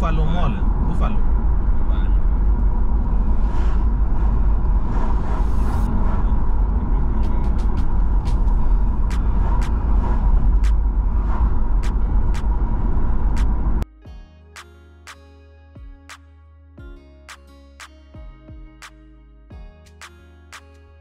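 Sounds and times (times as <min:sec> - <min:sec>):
vehicle road rumble: 0:00.0 - 0:13.8.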